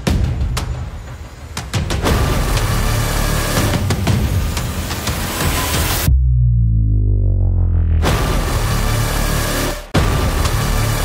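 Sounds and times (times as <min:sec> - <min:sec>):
deep rumble: 0:05.9 - 0:10.1.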